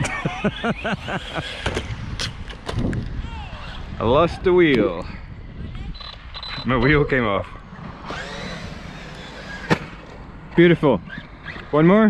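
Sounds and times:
steady outdoor hiss: 0.0 - 12.0
electric motor whining: 7.6 - 12.0.

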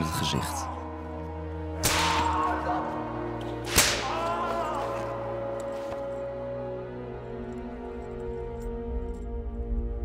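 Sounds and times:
whip lashes: 1.8 - 2.3, 3.6 - 4.2.

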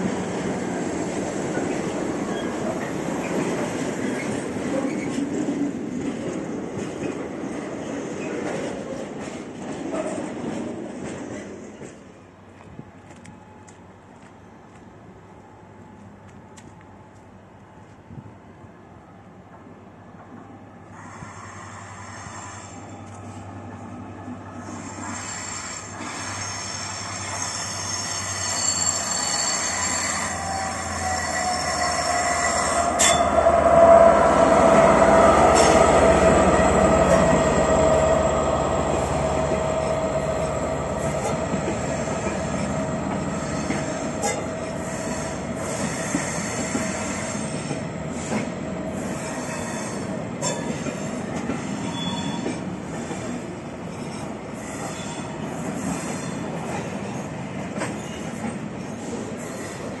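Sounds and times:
diesel locomotive passing: 0.0 - 60.0
train coaches rolling by: 0.0 - 60.0
wheel squeal: 24.6 - 33.4, 43.3 - 50.9, 51.6 - 56.5, 57.9 - 60.0.

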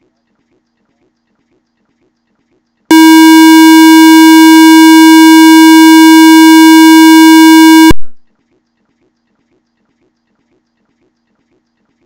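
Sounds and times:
loud buzzy electronic tone: 2.9 - 8.2.

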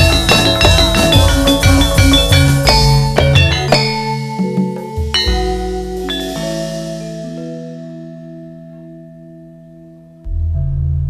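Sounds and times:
gamelan tones ringing: 0.0 - 9.8.

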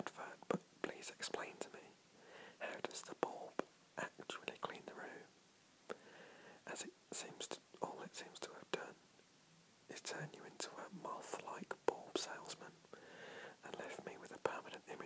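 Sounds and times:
man whispering: 0.0 - 2.0, 2.6 - 5.3, 6.6 - 9.0, 9.9 - 12.8, 13.6 - 15.0.

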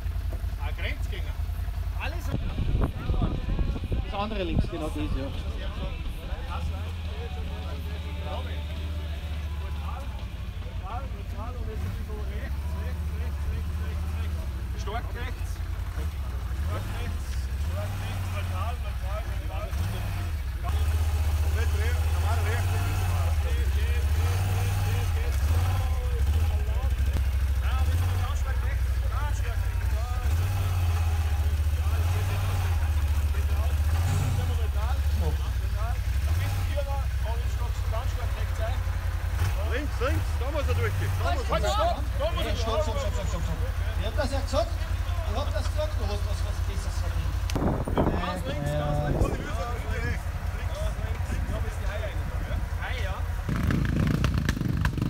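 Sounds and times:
faint voices talking: 0.0 - 53.8
quad engine idling: 0.0 - 55.0.

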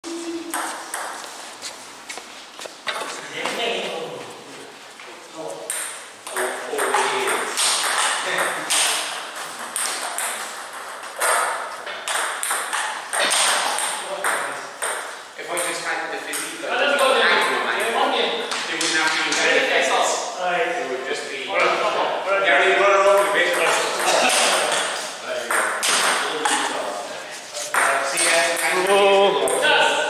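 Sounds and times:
background voices: 0.0 - 0.9.

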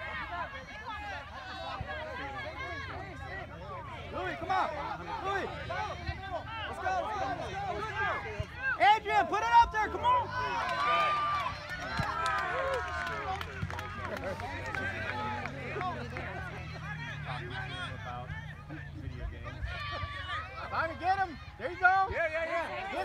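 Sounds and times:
crowd talking and calling out: 0.0 - 23.0.

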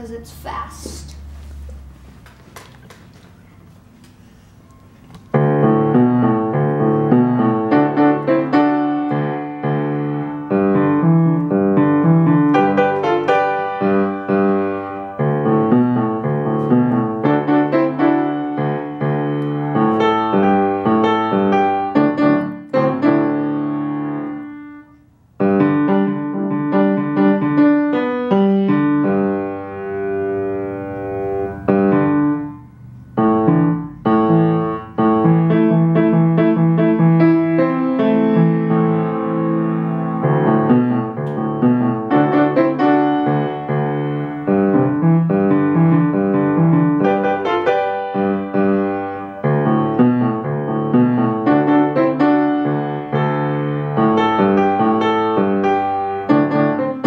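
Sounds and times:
fast grand piano piece: 5.3 - 57.0.

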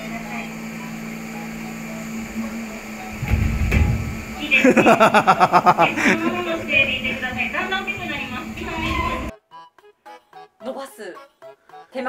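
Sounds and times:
dull low thumps: 3.0 - 4.5
short knocks: 3.2 - 4.4
low rumble: 3.2 - 4.5.

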